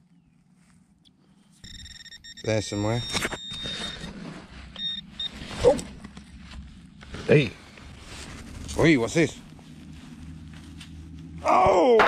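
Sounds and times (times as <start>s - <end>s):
metal detector beeps: 1.6s - 5.8s
scraping and rustling of soil: 3.2s - 11.5s.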